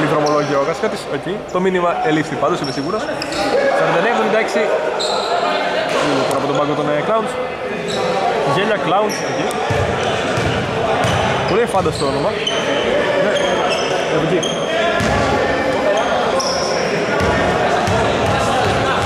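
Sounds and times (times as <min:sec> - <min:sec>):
sneakers squeaking on floor: 0:00.0 - 0:00.8, 0:02.5 - 0:03.6, 0:04.9 - 0:06.6, 0:07.8 - 0:08.3, 0:08.9 - 0:19.0
voices echoing in a hall: 0:00.0 - 0:19.0.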